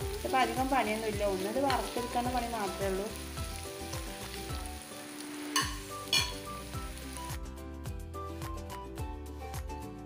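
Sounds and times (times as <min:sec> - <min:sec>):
onions sizzling in oil: 0:00.0 - 0:07.8
background music with steady beat: 0:03.4 - 0:10.0.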